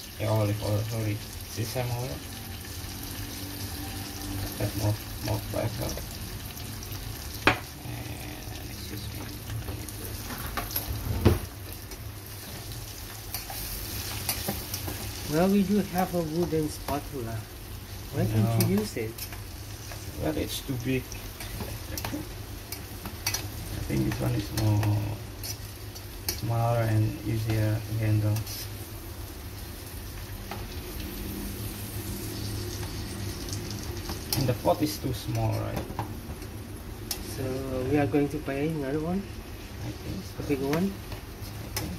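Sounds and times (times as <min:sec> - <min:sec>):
vegetables sizzling in oil: 0:00.0 - 0:41.9
knock on pan: 0:07.4 - 0:07.6.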